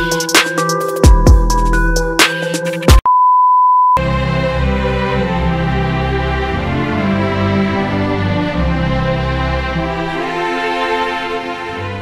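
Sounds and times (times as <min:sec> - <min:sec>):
electronic beep tone: 0:03.0 - 0:04.0.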